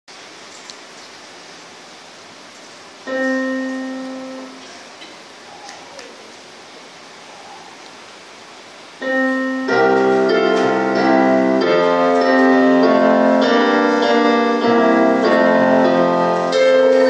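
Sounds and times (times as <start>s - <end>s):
steady background hiss: 0.1s - 17.0s
piano note: 3.0s - 5.0s, 9.0s - 17.0s.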